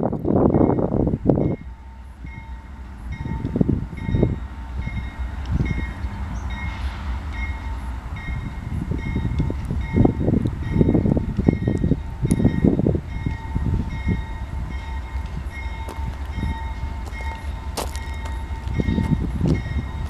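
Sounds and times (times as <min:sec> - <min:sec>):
freight train low rumble: 0:00.0 - 0:20.0
wind buffeting microphone: 0:00.0 - 0:20.0.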